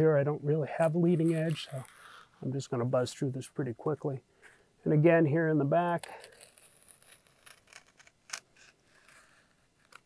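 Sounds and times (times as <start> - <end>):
utility knife cutting foam: 1.1 - 2.4, 5.9 - 10.0.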